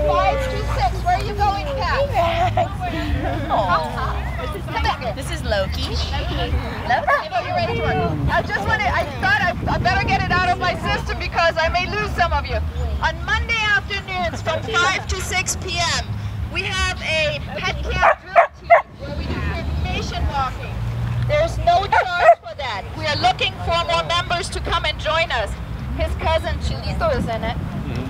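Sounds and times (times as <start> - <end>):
people chatting: 0.0 - 20.7, 21.3 - 28.0
dog barking loudly: 7.0 - 7.4, 18.0 - 18.9, 21.9 - 22.5.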